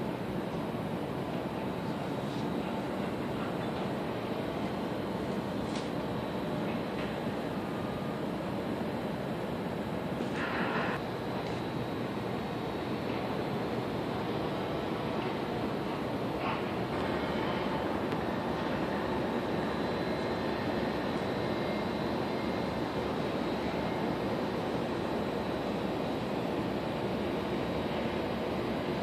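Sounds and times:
distant city hum: 0:00.0 - 0:29.0.

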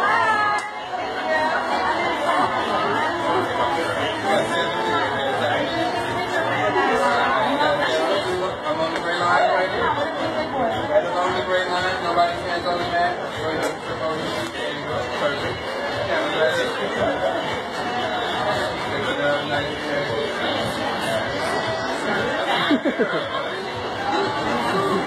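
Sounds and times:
indistinct chatter: 0:00.0 - 0:25.0.

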